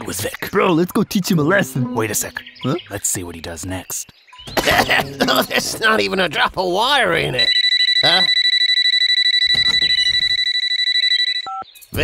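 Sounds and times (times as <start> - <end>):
electronic phone ring tone: 7.4 - 11.6.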